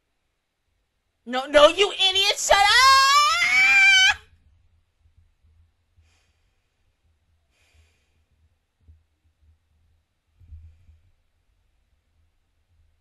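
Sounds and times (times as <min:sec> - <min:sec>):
high-pitched wordless cry: 0:01.6 - 0:04.2.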